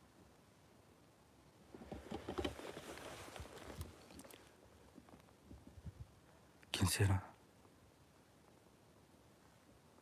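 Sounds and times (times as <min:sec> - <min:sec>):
faint rustling: 0:01.7 - 0:06.1.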